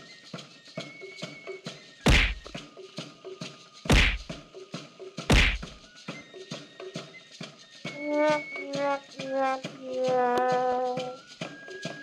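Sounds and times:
cartoon kick whacks: 2.1 - 2.5, 3.9 - 4.3, 5.3 - 5.7
light game music: 7.9 - 11.3.

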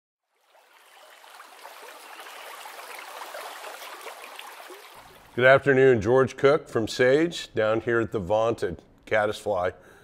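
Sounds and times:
stream water flowing: 0.2 - 5.4
water trickling: 0.2 - 5.6.

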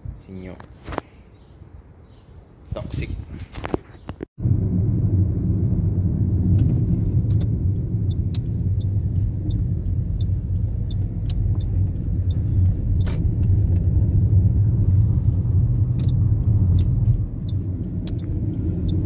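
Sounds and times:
car road and engine rumble: 3.5 - 19.0
faint regular ticking: 7.7 - 12.5.

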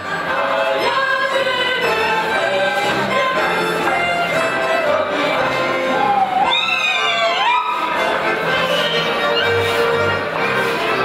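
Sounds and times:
folk choir singing: 0.0 - 11.0
instrumental accompaniment: 0.0 - 11.0.

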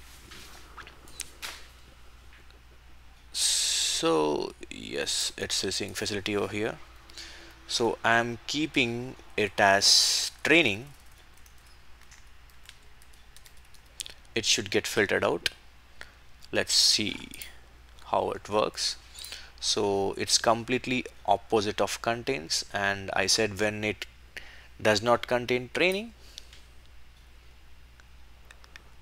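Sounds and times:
low steady hum: 0.0 - 29.0
computer mouse clicks: 10.9 - 14.2
typing on a keyboard: 10.9 - 14.2.

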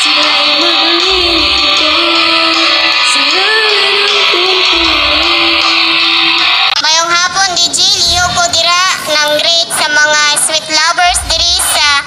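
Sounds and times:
girl singing with vibrato: 0.0 - 12.0.

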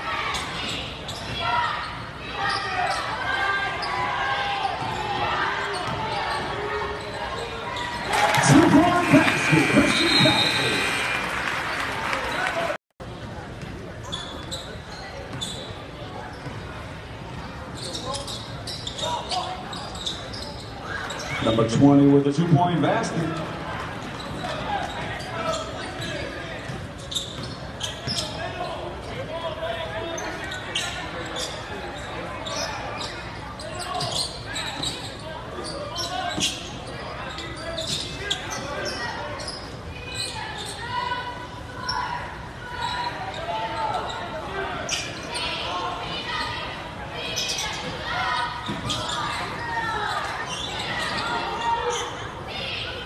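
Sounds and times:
spectators talking: 0.0 - 53.0.

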